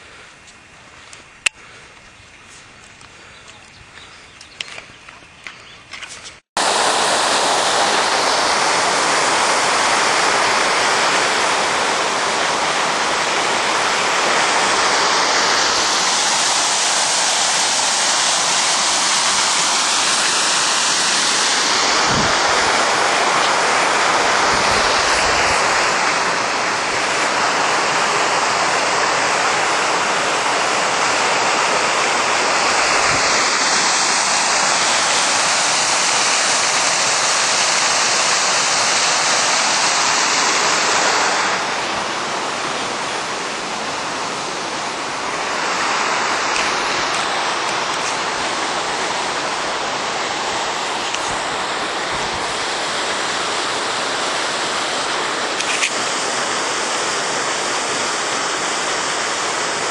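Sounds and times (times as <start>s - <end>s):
water rushing and splashing: 6.4s - 59.9s.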